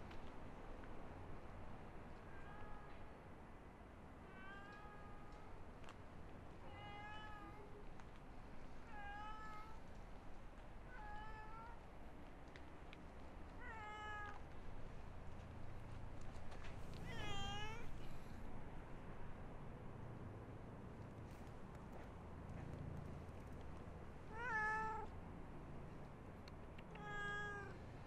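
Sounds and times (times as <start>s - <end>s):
cat meowing: 6.7s - 7.7s, 8.9s - 9.8s, 10.9s - 11.8s, 13.6s - 14.4s, 17.0s - 18.1s, 24.3s - 25.1s, 26.9s - 27.8s.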